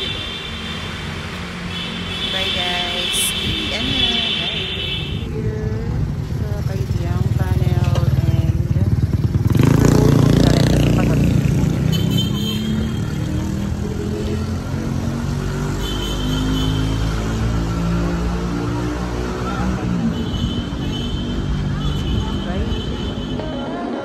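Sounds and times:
low traffic rumble: 0.0s - 24.0s
motorcycle engine passing: 5.6s - 20.2s.

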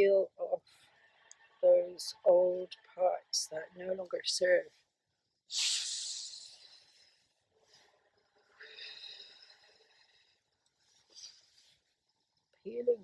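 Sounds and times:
woman blowing hard: 5.5s - 6.8s.

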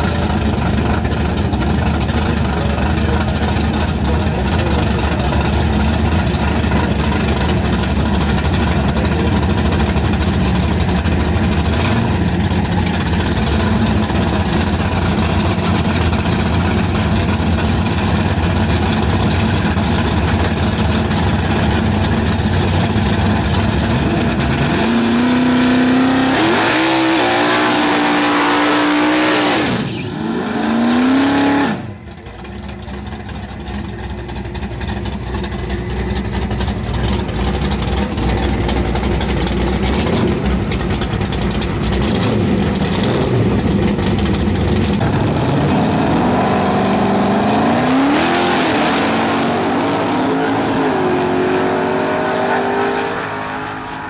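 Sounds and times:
car engine idling and revving: 0.0s - 54.0s
tyres screeching in burnout: 26.7s - 31.9s.

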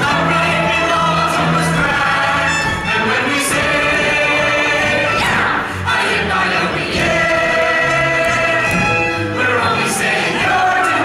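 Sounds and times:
mixed chorus singing: 0.0s - 11.0s.

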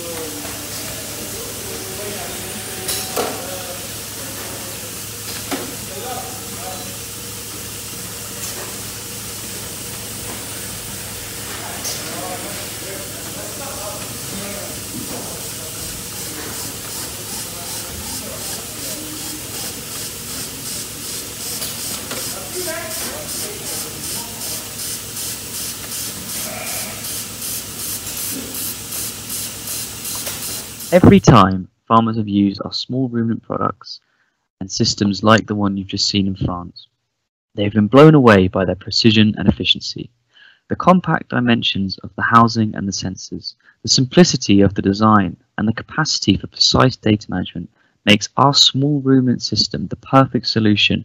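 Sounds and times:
hiss of vacuum and milk flow: 0.0s - 31.0s
low machine hum: 0.0s - 31.0s.

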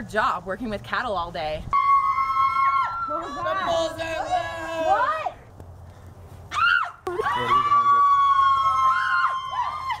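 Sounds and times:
girl screaming: 1.8s - 3.7s, 6.5s - 10.0s.

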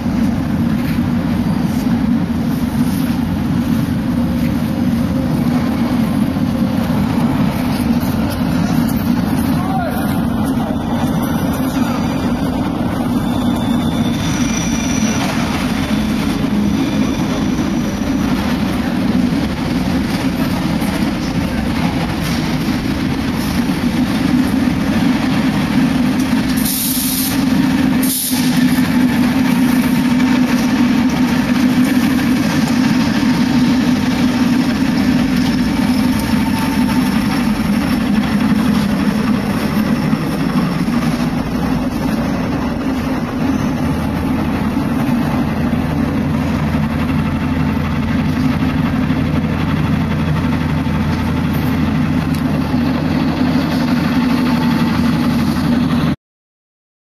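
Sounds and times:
metro train rumble: 0.0s - 56.2s.

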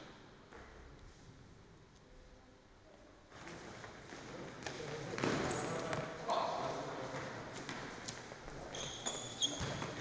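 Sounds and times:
shoes squeaking: 5.3s - 6.0s, 7.5s - 10.0s.

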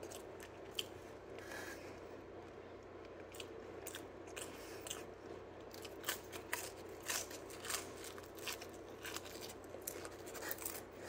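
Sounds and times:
chewing crisp pizza: 0.0s - 11.0s.

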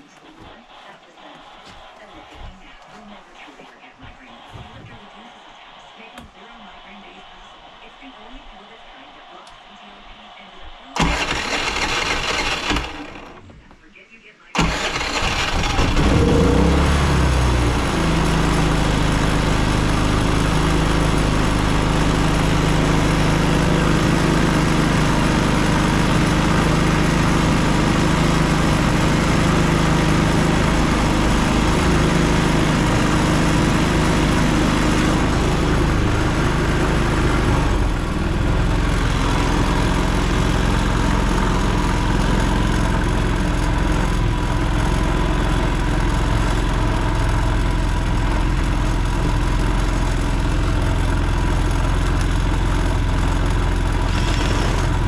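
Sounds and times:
generator engine starting and running: 0.0s - 13.7s, 14.5s - 55.0s.

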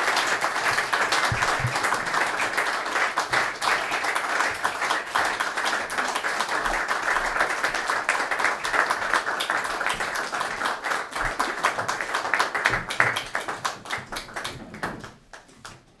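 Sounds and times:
audience applauding: 0.0s - 15.5s.

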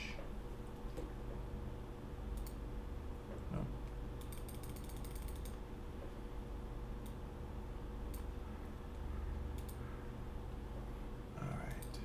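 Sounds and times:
steady low hum: 0.0s - 12.0s
mouse scroll wheel clicking: 4.2s - 5.6s
single mouse clicks: 9.5s - 9.8s.

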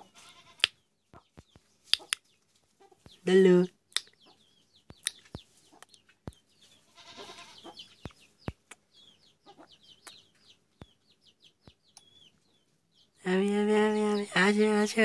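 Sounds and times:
high bird chirps: 0.0s - 15.0s.

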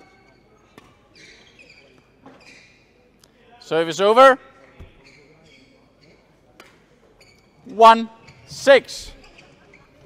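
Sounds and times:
shoes squeaking on court floor: 0.0s - 3.2s, 4.5s - 10.0s.

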